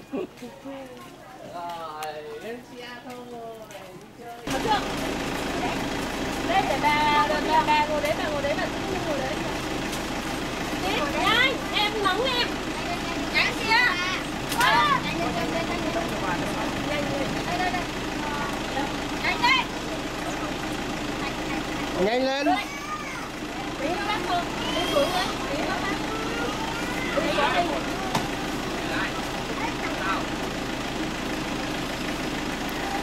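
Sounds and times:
minivan engine idling: 0:00.0 - 0:33.0
people talking and calling out: 0:00.0 - 0:33.0.

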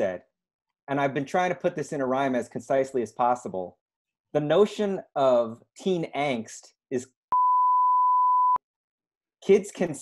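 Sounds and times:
electronic bleep: 0:07.3 - 0:08.6.

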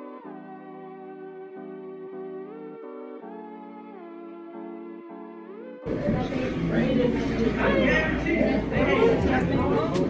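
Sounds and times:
many voices chattering: 0:05.8 - 0:10.0.

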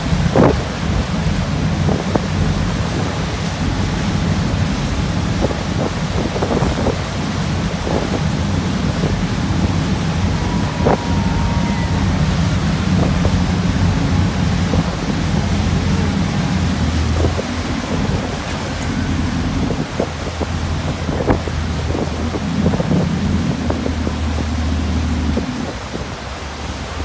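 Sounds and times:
boat engine drone: 0:00.0 - 0:27.0
churning boat wake: 0:00.0 - 0:27.0
wind buffeting microphone: 0:00.0 - 0:27.0.

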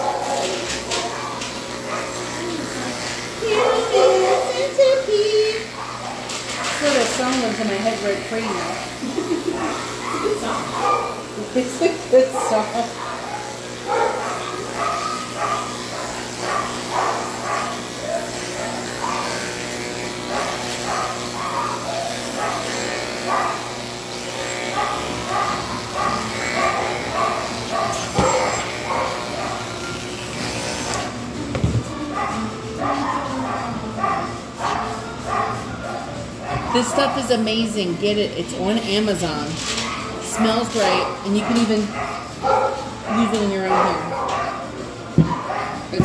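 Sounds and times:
dog barking: 0:00.0 - 0:02.2, 0:03.4 - 0:04.8, 0:05.8 - 0:07.0, 0:09.6 - 0:11.2, 0:12.2 - 0:19.5, 0:20.2 - 0:23.7, 0:24.7 - 0:29.8, 0:32.1 - 0:37.4, 0:39.8 - 0:46.0
electric clipper humming: 0:00.0 - 0:46.0.

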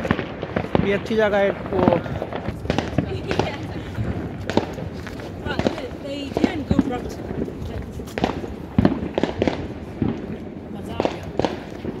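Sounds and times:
fireworks popping and banging: 0:00.0 - 0:12.0.

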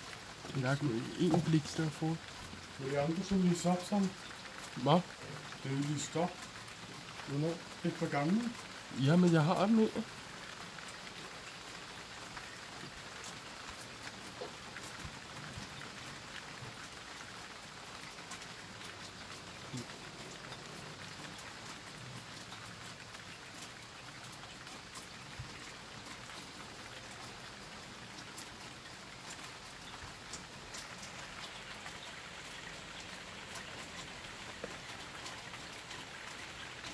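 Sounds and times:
heavy rain hiss: 0:00.0 - 0:36.9
single raindrops ticking: 0:00.0 - 0:36.9.

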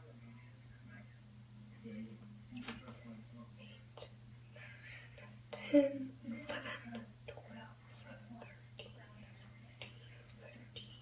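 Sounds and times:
steady low hum: 0:00.0 - 0:11.0
person whispering: 0:07.3 - 0:11.0.

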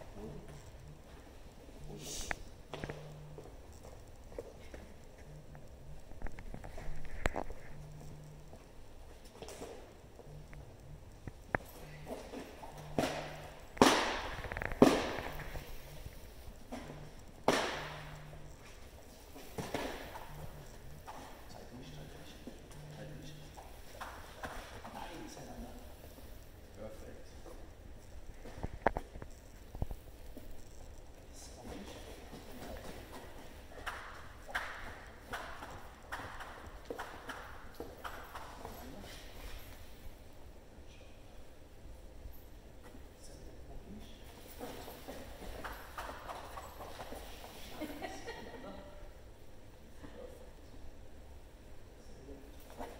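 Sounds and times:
rag slapping against floor: 0:13.0 - 0:15.4, 0:17.4 - 0:18.0.

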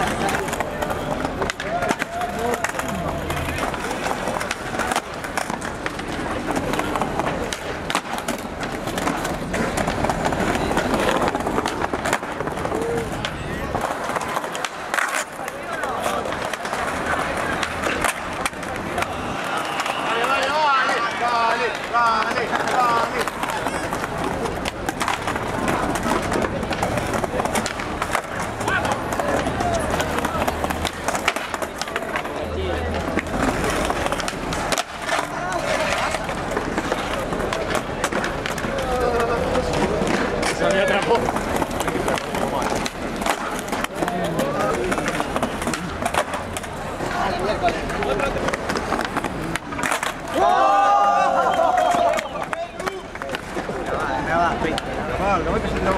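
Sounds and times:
onlookers talking and shouting: 0:00.0 - 0:55.9
skateboard wheels rolling: 0:00.0 - 0:55.9
skateboards popping and clattering: 0:00.0 - 0:55.9.

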